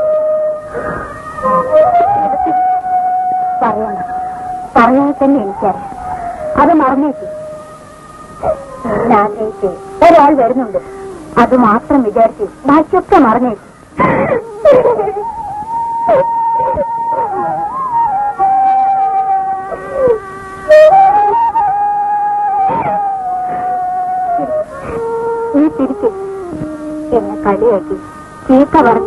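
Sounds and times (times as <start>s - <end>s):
long held music note: 0.0s - 29.0s
person crying out: 14.0s - 15.3s, 22.6s - 24.5s.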